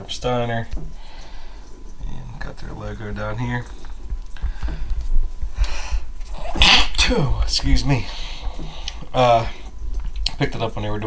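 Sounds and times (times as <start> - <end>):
man coughing: 6.4 - 7.2.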